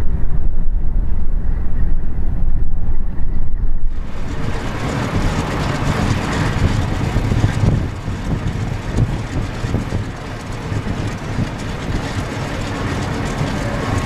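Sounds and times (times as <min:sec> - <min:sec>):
radial aircraft engine rumbling: 0:00.0 - 0:14.0.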